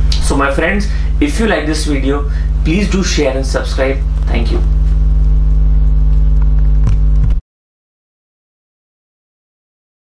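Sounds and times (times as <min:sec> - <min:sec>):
low room hum: 0:00.0 - 0:07.4.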